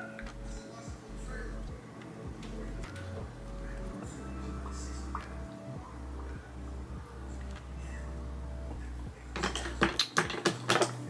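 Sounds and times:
plastic containers clicking: 9.4s - 11.0s.

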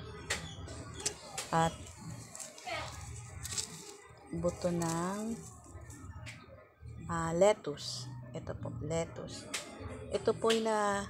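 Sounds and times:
children's voices: 2.4s - 4.0s.

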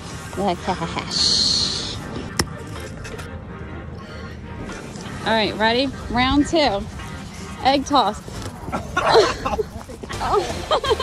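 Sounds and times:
voices: 0.3s - 11.0s.

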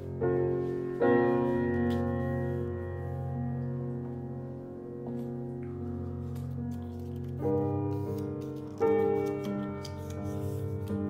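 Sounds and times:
slow piano chords: 0.0s - 11.0s.

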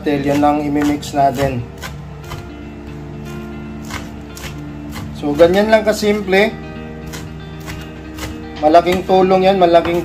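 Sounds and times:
knife chopping on wooden board: 0.0s - 2.6s, 3.8s - 6.4s, 7.0s - 10.0s
background music with held notes: 0.0s - 10.0s.

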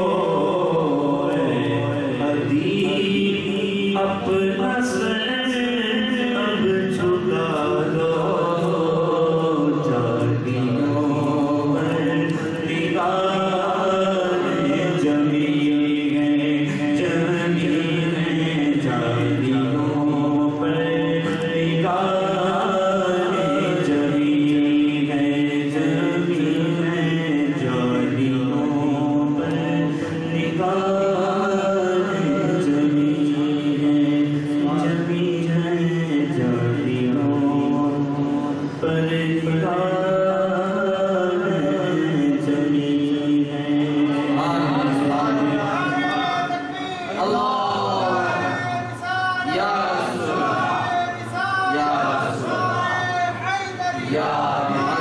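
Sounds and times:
men chanting unaccompanied: 0.0s - 55.0s
men singing through microphones: 0.0s - 55.0s.

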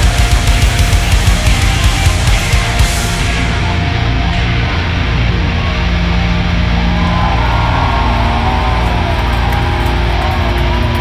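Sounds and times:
electric guitars: 0.0s - 11.0s
heavy metal band playing live: 0.0s - 11.0s.

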